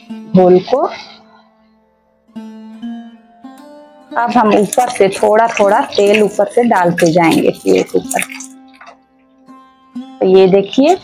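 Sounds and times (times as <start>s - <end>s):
plucked-string notes: 1.5s - 11.0s.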